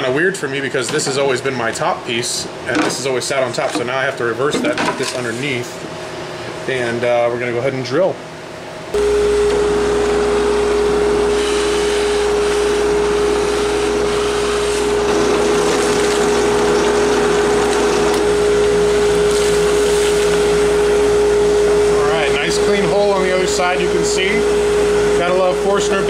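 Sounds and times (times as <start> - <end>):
drill press motor humming: 9.0 - 26.0
drill bit boring through wood: 11.3 - 20.8.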